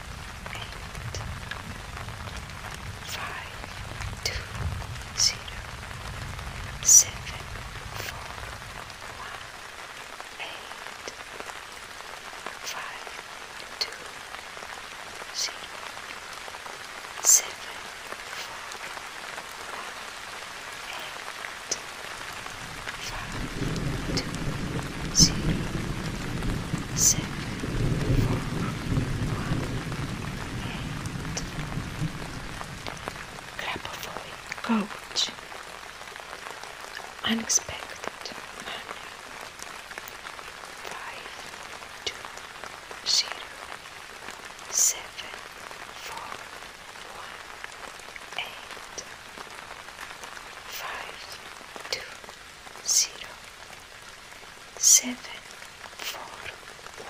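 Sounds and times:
thunder rumble: 0:00.0 - 0:09.5, 0:22.6 - 0:35.1
rain drop ticks: 0:00.0 - 0:57.0
steady rain: 0:00.0 - 0:57.0.

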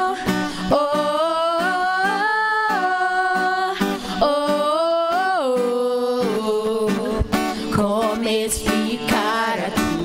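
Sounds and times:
girls singing into microphones: 0:00.0 - 0:10.0.

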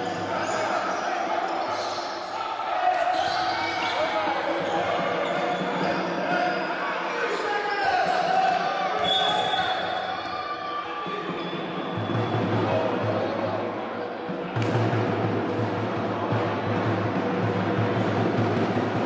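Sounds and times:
voices echoing in hall: 0:00.0 - 0:19.0.

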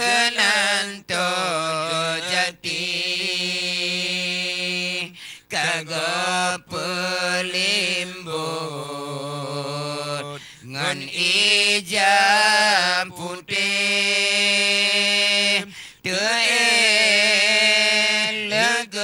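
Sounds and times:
men chanting: 0:00.0 - 0:19.0.

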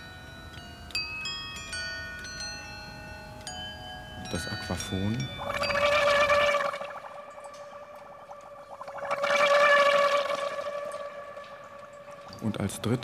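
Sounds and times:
water-filled glass bowl tone: 0:00.0 - 0:13.0.

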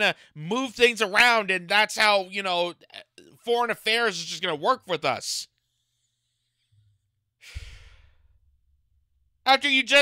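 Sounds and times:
man sighing: 0:07.4 - 0:08.2.

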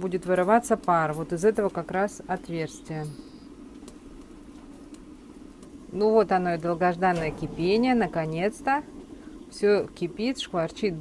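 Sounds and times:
samovar low rumble: 0:05.8 - 0:10.0.

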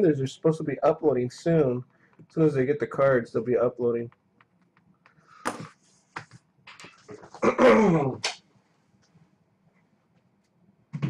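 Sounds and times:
person groaning: 0:07.4 - 0:08.2.

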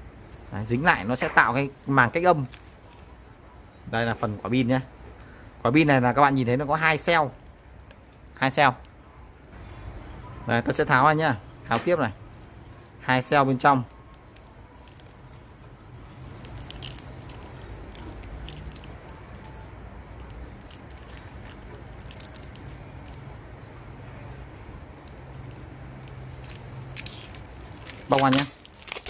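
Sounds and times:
tape crinkling: 0:02.1 - 0:03.1, 0:13.6 - 0:23.4, 0:24.8 - 0:29.0.

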